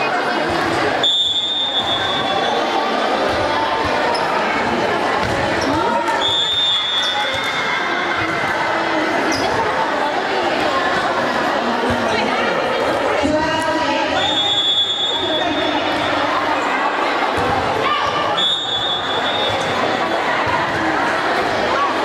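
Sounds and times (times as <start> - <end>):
people talking and calling out: 0.0 - 22.0
referee's whistle blasts: 1.0 - 2.6, 6.2 - 7.4, 14.1 - 15.7, 18.4 - 19.7.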